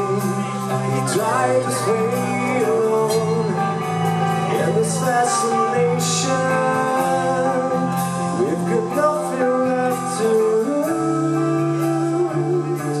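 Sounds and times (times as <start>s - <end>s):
man singing: 0.0s - 13.0s
rock band playing: 0.0s - 13.0s.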